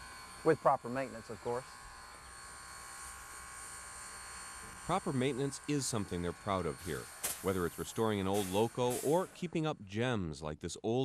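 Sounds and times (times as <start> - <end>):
low buzz with hiss: 0.0 - 11.0.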